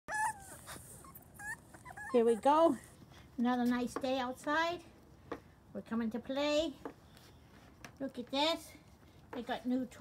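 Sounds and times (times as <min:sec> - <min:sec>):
puppies whimpering: 0:00.1 - 0:02.8.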